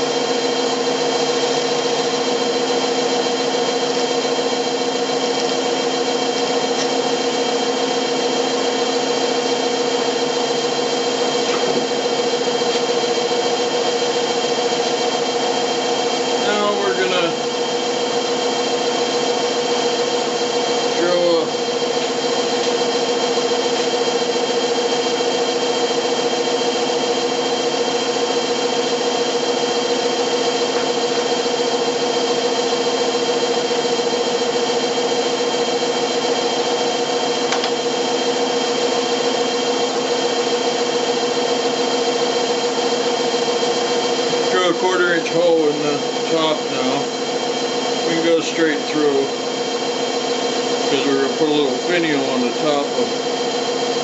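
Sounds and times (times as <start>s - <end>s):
wood lathe humming: 0.0s - 54.0s.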